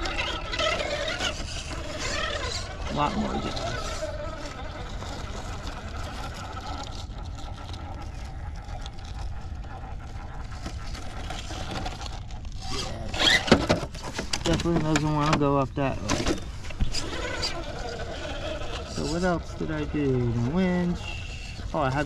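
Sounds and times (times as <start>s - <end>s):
electric motor whining: 0.0s - 22.0s
tires scrabbling on rock: 0.0s - 22.0s
toy truck clattering over: 11.1s - 15.4s.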